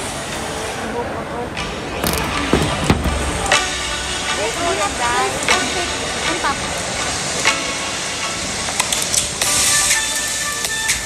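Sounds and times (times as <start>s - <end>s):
steady outdoor hiss: 0.0s - 11.0s
music with held notes: 2.0s - 11.0s.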